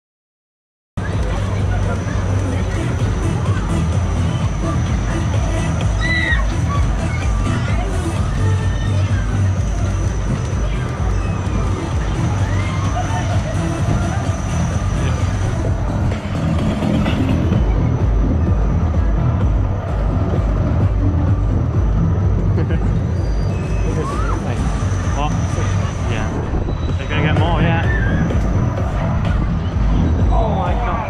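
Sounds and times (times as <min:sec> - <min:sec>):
voices calling out: 0:01.0 - 0:31.0
loud dance music with bass beat: 0:01.4 - 0:31.0.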